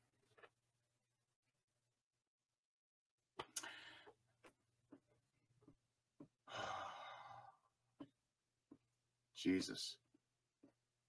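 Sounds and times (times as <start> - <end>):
man sighing: 6.5 - 7.6.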